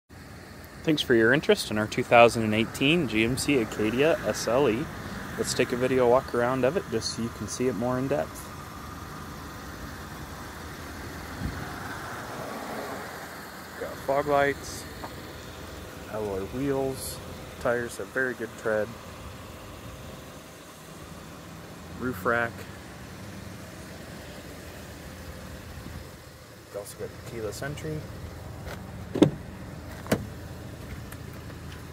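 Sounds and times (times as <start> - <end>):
short low thump: 29.1 - 30.3.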